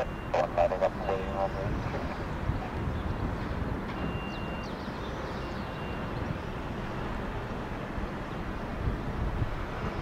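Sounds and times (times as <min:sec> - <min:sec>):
person speaking: 0:00.0 - 0:02.2
jet engines rumbling: 0:00.0 - 0:05.3.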